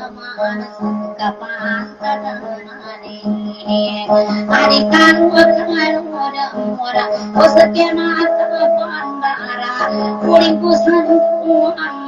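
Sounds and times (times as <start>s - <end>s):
person singing: 0.0s - 12.0s.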